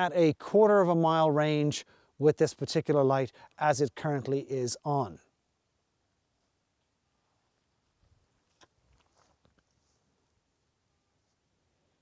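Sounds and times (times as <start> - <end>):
faint clicks and rustles: 6.2 - 11.5.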